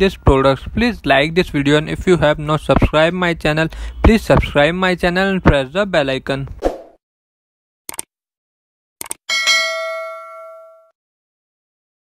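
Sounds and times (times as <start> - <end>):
bell-like ding: 9.3 - 11.0.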